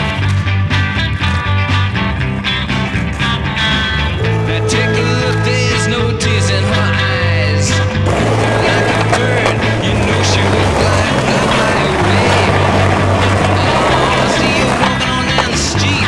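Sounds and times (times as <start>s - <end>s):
background music with bass line: 0.0s - 16.0s
skateboard clacks: 0.0s - 16.0s
skateboard wheels rolling on concrete: 0.0s - 16.0s.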